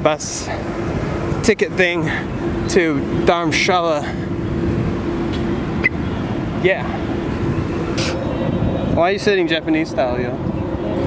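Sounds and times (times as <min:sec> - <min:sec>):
low outdoor rumble: 0:00.0 - 0:11.0
short hiss: 0:08.0 - 0:08.2.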